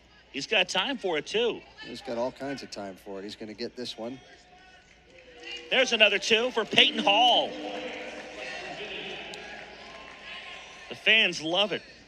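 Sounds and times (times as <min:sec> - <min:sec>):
arena crowd din: 0:00.0 - 0:12.0.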